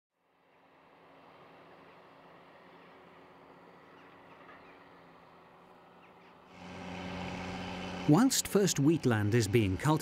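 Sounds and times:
crawler tractor drone: 0.4s - 10.0s
distant tractor engine drone: 0.4s - 10.0s
faint bird calls: 5.9s - 6.5s.

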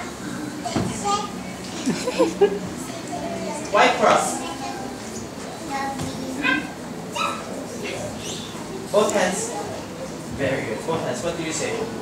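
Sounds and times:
room chatter: 0.0s - 12.0s
young children's voices: 0.6s - 1.5s, 4.3s - 8.6s.

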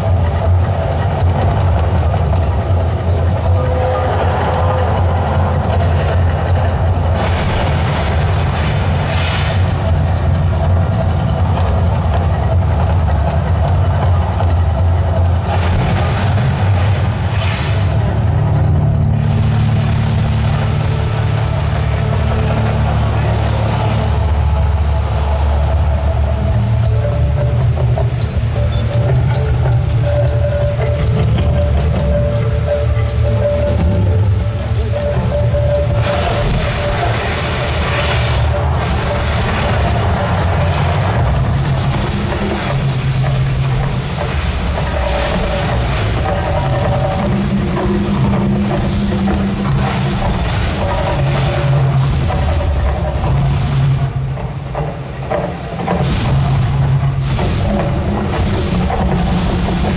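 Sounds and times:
deep steady rumble: 0.0s - 59.9s
rushing hiss of gas fireballs: 7.2s - 10.2s, 15.5s - 18.0s, 36.0s - 54.0s.

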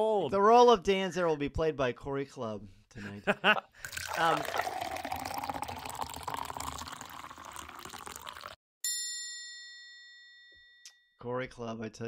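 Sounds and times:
liquid pouring: 3.8s - 8.6s
bell-like ding: 8.8s - 11.2s.

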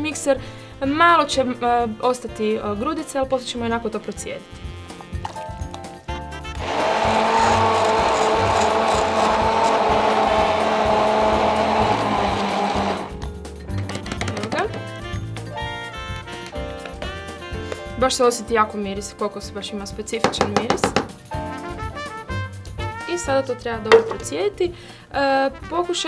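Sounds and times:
stick blender whirring: 6.5s - 13.2s
background music with beat: 9.1s - 18.0s.

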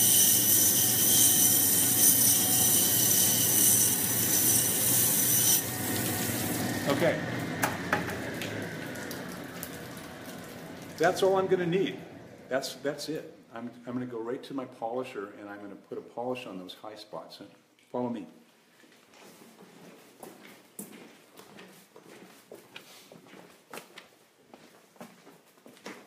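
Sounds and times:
low machine hum: 5.6s - 13.5s
water dripping and trickling: 5.7s - 6.7s, 8.1s - 11.4s
footsteps on hard floor: 18.8s - 26.0s.

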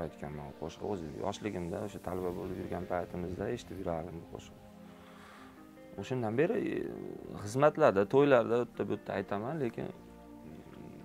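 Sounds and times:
man's voice: 0.0s - 4.6s.

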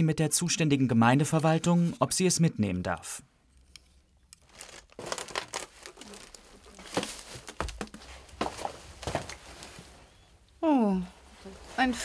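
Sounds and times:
belongings rustling: 3.5s - 12.0s
plastic bag crinkling: 4.4s - 9.7s.

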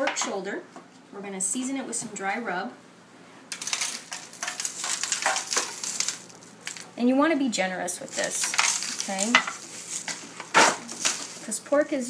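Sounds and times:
spice shaken onto meat in foil pan: 3.6s - 6.9s, 8.1s - 11.4s.

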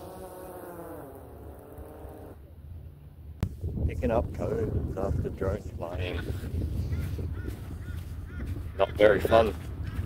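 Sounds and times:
drone propellers whirring: 0.0s - 2.5s.

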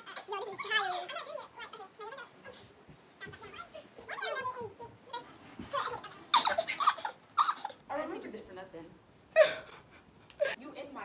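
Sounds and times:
young women laughing: 9.3s - 10.6s.

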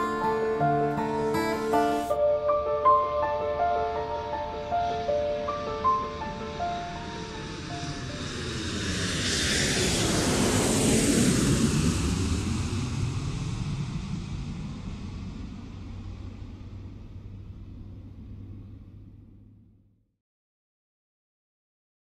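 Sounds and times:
airplane flying past: 0.0s - 19.9s.

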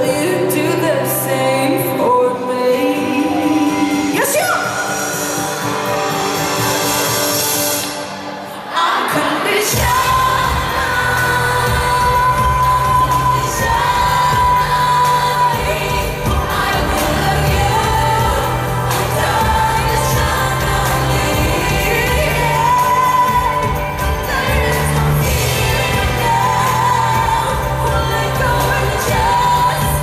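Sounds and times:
woman singing: 0.0s - 5.3s, 8.6s - 30.0s
band with heavy bass: 9.6s - 30.0s.

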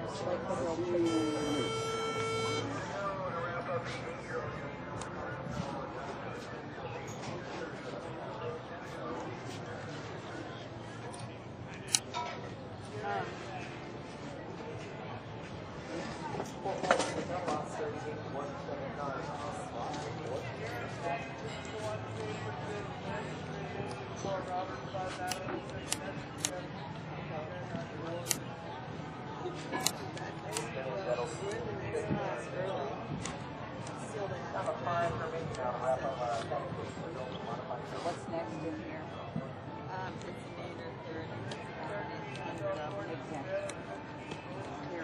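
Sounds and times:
faint voices: 0.0s - 45.0s
indistinct voices talking: 0.4s - 4.2s.

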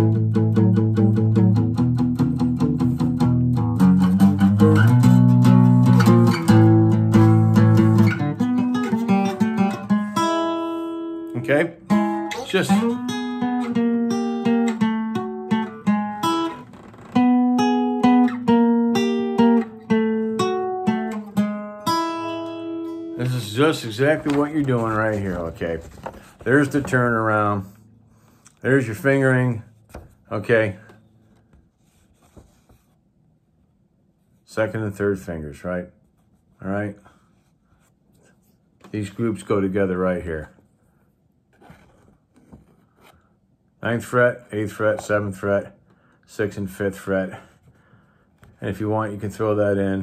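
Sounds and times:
acoustic guitar picking blues: 0.0s - 28.0s
man speaking: 11.3s - 13.0s, 23.2s - 27.8s, 28.6s - 29.7s, 30.3s - 30.9s, 34.5s - 36.0s, 36.6s - 37.1s, 38.9s - 40.6s, 43.8s - 47.5s, 48.6s - 50.0s
paper rustling: 23.2s - 28.4s, 29.7s - 33.0s, 41.5s - 43.3s.

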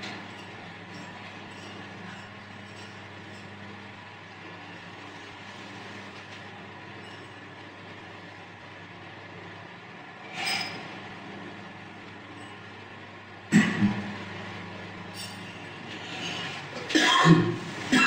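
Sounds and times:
electric fans humming: 0.0s - 18.0s.

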